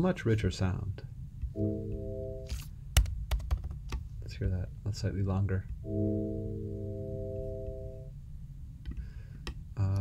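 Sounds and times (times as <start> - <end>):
organ-like synthesizer chord: 1.6 - 2.6, 5.8 - 8.2.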